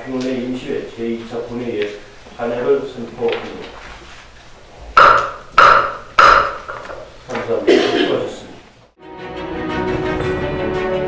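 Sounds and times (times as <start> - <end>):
wooden gavel knocking: 5.0 - 7.0.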